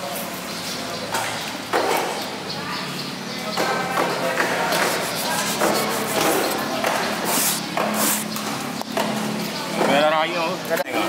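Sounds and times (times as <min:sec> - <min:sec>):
people talking: 0:00.0 - 0:08.4
person speaking: 0:04.7 - 0:08.3.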